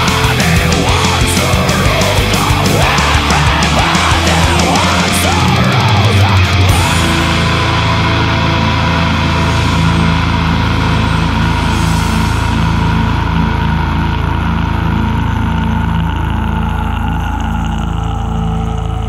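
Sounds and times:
distorted guitar and bass chord ringing: 0.0 - 19.0.

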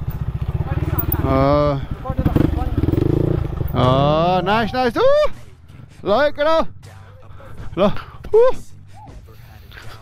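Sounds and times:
dirt bike engine at low revs: 0.0 - 4.5.

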